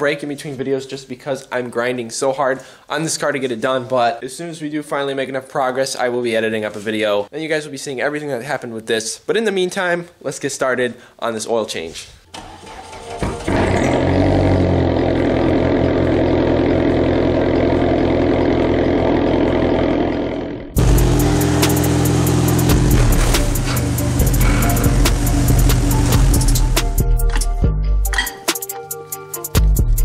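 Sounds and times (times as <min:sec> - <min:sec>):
car engine running: 0:12.4 - 0:27.3
music with steady beat: 0:20.8 - 0:30.0.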